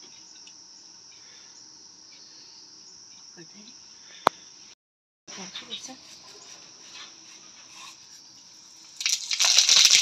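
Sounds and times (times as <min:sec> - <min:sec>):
seeds sizzling in hot oil: 0:08.8 - 0:10.0.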